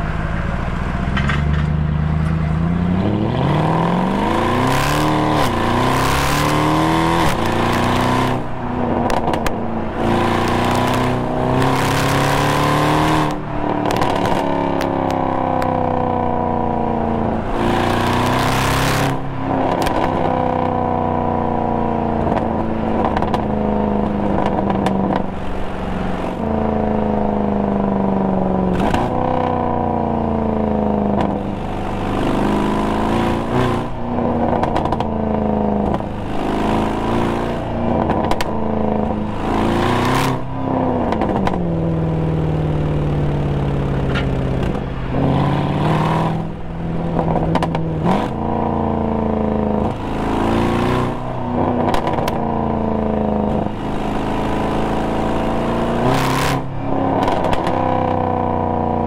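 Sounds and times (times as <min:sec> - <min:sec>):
car engine pulling: 0:00.0 - 0:59.0
exhaust crackles and pops: 0:09.0 - 0:09.6, 0:13.2 - 0:15.8, 0:19.6 - 0:20.3, 0:22.2 - 0:25.6, 0:34.3 - 0:36.2, 0:37.9 - 0:39.2, 0:41.0 - 0:41.8, 0:43.6 - 0:44.9, 0:46.3 - 0:48.4, 0:51.6 - 0:52.9, 0:56.0 - 0:57.9.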